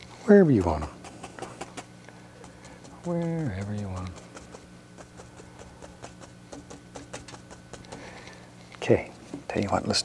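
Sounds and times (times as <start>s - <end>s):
paint brush tapping on canvas: 0.6s - 8.4s.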